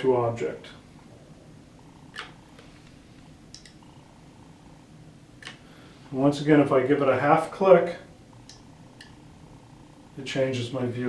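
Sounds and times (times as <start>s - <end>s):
faint low hum: 0.0s - 11.0s
light clicks: 3.5s - 3.8s.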